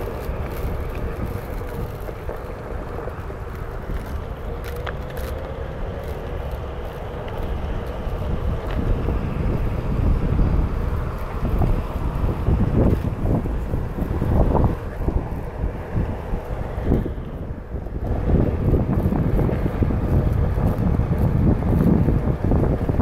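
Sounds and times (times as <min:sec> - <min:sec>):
wind rushing over microphone: 0:00.0 - 0:23.0.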